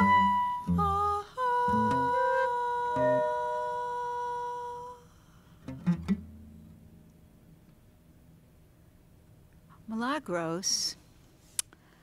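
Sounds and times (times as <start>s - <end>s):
flute holding long note: 0.0s - 3.9s
acoustic guitar plucking low notes: 0.0s - 7.8s.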